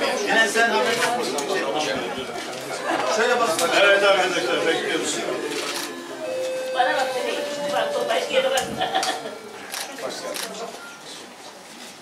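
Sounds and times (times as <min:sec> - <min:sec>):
people talking: 0:00.0 - 0:11.7
steady high tone: 0:04.2 - 0:11.1.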